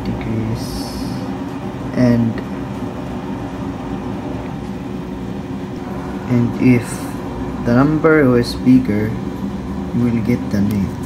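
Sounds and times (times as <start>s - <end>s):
room machinery hum: 0.0s - 11.0s.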